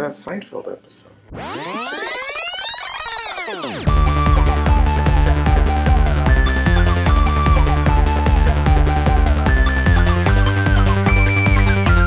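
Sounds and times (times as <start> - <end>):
synthesized tones sweeping: 1.3 - 12.0.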